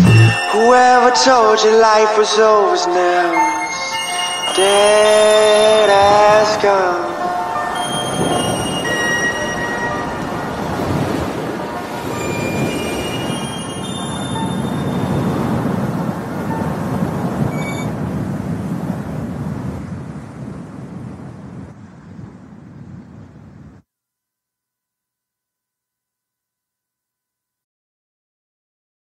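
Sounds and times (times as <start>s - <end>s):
high squealing tones: 0.0s - 1.7s, 11.8s - 15.4s, 17.4s - 17.9s.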